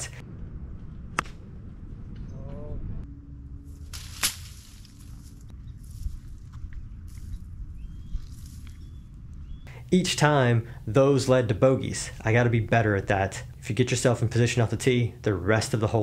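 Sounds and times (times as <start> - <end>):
wind rumble: 0.0 - 13.7.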